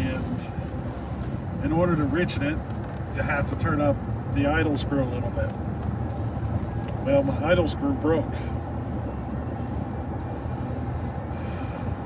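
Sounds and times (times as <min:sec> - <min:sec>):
road noise inside car: 0:00.0 - 0:12.0
vehicle engine rumble: 0:00.0 - 0:12.0.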